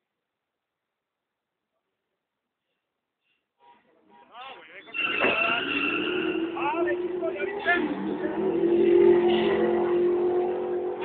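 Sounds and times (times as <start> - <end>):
high tyre squeal: 3.6 - 11.0
car engines accelerating: 4.8 - 11.0.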